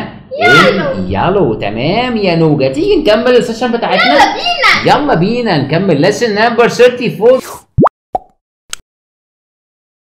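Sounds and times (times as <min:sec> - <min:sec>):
cartoon plop sliding up in pitch: 0:07.8 - 0:08.4.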